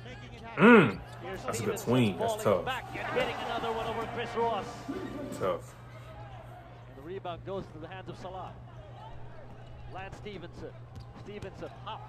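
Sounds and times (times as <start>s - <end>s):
commentator speaking: 0.6s - 5.7s.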